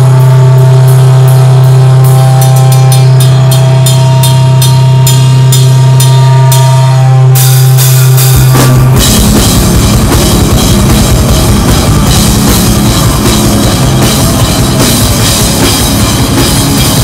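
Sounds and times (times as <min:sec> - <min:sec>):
fast dense drumming: 0:00.0 - 0:06.8, 0:07.4 - 0:17.0
cymbal strokes: 0:00.0 - 0:09.3
metal band playing loud: 0:00.0 - 0:17.0.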